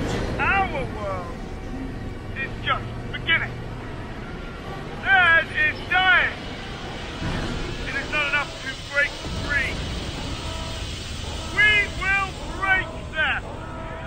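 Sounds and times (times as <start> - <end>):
low rumbling drone: 0.0 - 14.0
man speaking dramatically: 5.0 - 6.4, 11.5 - 13.4.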